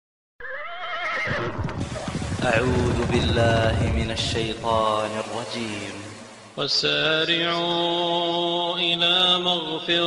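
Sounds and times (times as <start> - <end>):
low rumble: 1.4 - 6.2.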